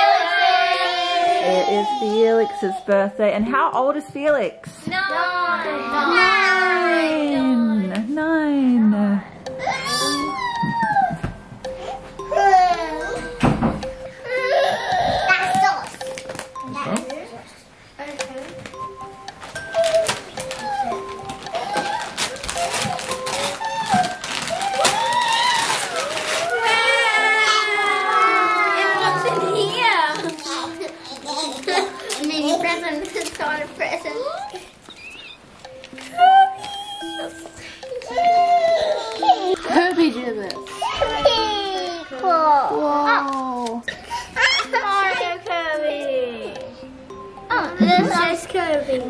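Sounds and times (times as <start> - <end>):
small child wailing: 9.6 - 11.3, 19.8 - 30.8.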